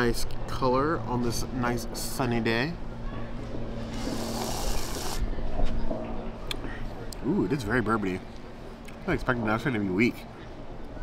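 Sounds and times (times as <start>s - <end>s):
sucking through a straw: 4.0s - 5.3s.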